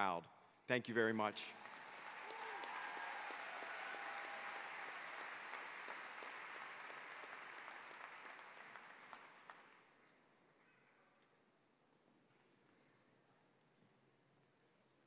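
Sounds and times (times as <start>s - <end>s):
audience applauding: 0.9s - 9.9s.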